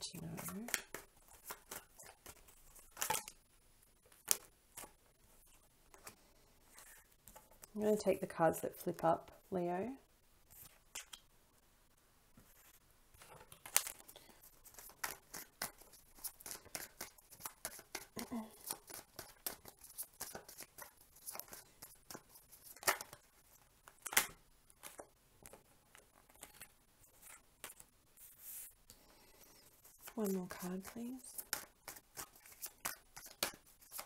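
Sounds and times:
cards being shuffled: 0.1s - 3.4s, 13.2s - 28.7s, 29.4s - 34.0s.

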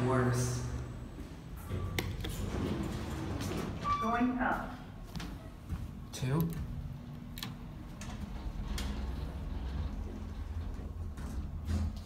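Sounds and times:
elevator car rumbling: 0.0s - 4.5s, 6.0s - 12.0s.

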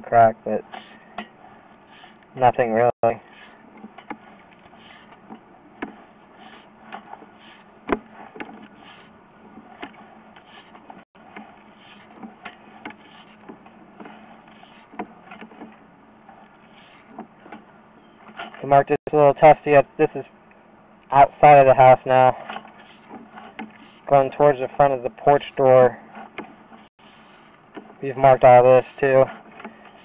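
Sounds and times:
faint clicks and knocks: 3.4s - 6.1s, 6.8s - 18.6s, 27.5s - 28.0s.

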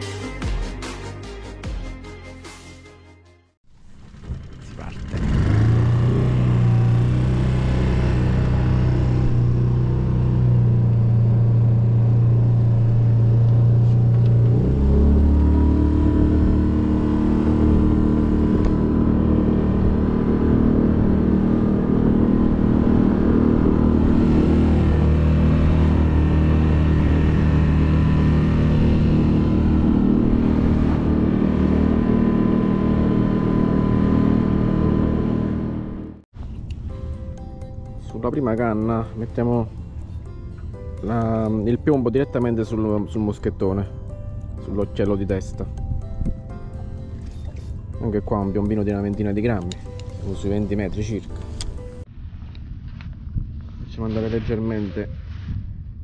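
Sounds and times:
boat motor humming: 3.7s - 36.7s, 37.3s - 52.1s.

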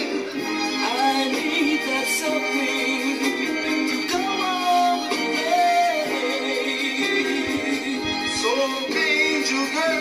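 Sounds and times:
soul music from a vinyl record: 0.0s - 10.0s.

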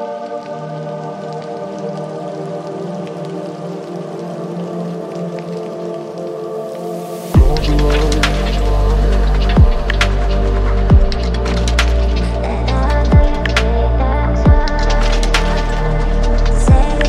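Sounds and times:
soft crackling texture: 0.0s - 17.0s
deep bass and drums: 7.4s - 17.0s.

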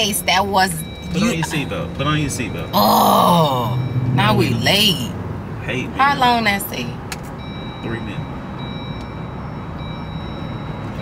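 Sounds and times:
car engine rumble and road noise: 0.0s - 11.0s.

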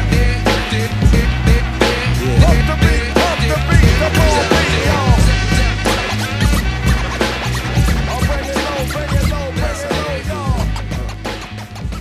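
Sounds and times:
hip hop drum beat and bass: 0.0s - 12.0s
turntable scratching: 1.2s - 12.0s.

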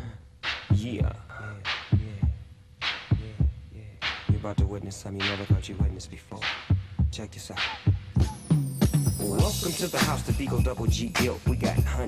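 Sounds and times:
hip hop beat: 0.4s - 12.0s
deep kick drums: 7.9s - 12.0s.

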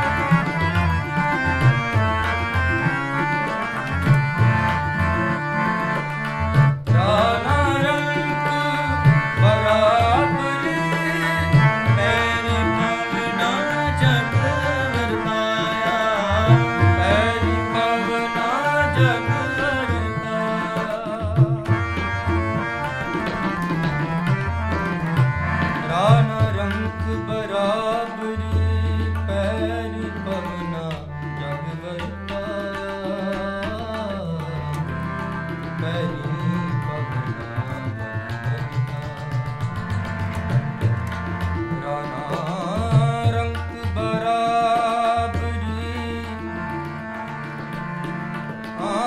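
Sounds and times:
harmonium holding chords: 0.0s - 49.0s
tabla playing rhythm: 0.0s - 49.0s
person singing: 7.0s - 21.9s.

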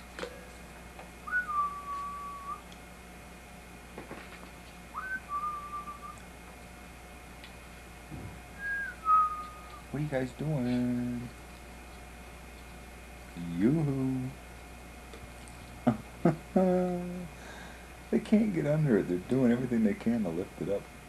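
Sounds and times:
rising whistles: 1.2s - 2.6s, 4.9s - 6.2s, 8.6s - 9.9s
soft low thump: 8.1s - 8.4s.

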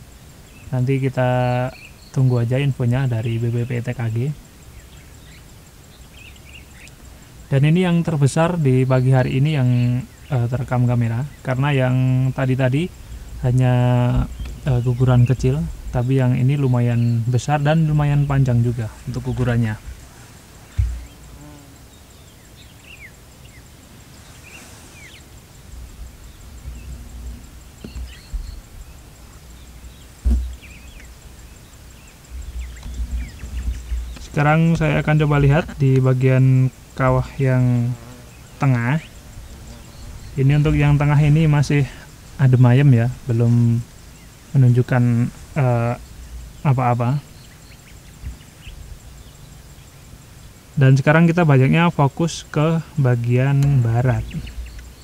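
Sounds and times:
small birds chirping: 0.0s - 55.0s
low uneven rumble: 0.5s - 22.7s, 23.4s - 50.0s
sharp thump: 20.7s - 21.2s, 30.2s - 30.6s.

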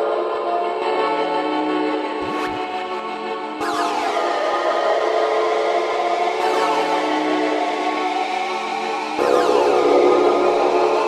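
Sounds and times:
sustained synthesizer chord: 0.0s - 11.0s.

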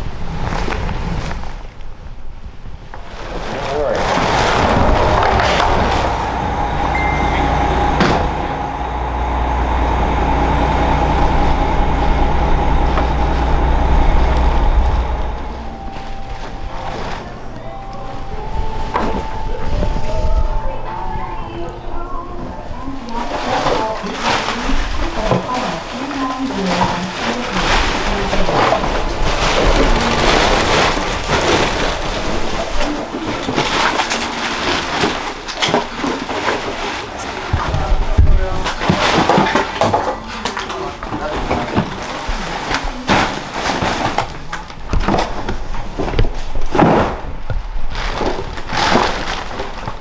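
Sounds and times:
plastic bags rustling: 0.0s - 50.0s
background music: 13.8s - 23.2s.

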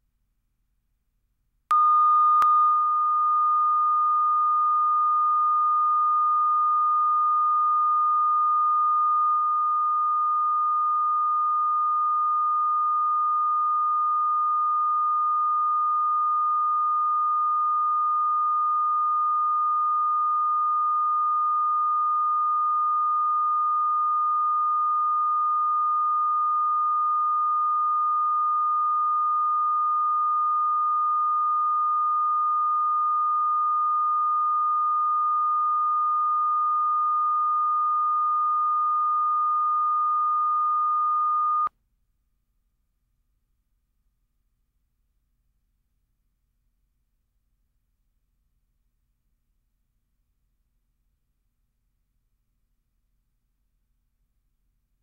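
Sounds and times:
pure test tone: 1.7s - 41.7s.

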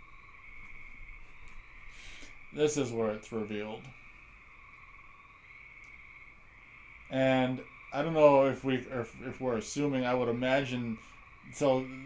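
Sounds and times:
low hiss: 0.0s - 12.0s
thin electronic whine: 0.0s - 12.0s.

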